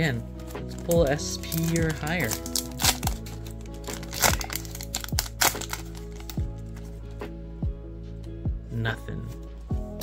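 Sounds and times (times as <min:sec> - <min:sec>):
background music with steady beat: 0:00.0 - 0:10.0
foil pack tearing and crinkling: 0:00.4 - 0:06.4.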